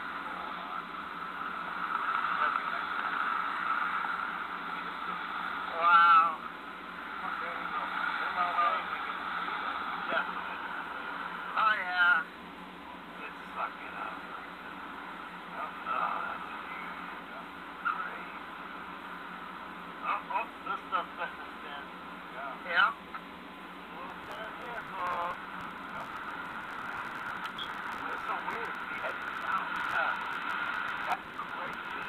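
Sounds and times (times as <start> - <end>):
steady hiss: 0.0 - 32.0.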